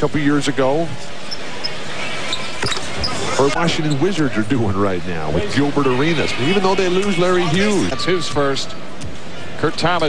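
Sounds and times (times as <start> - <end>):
arena crowd murmur: 0.0 - 10.0.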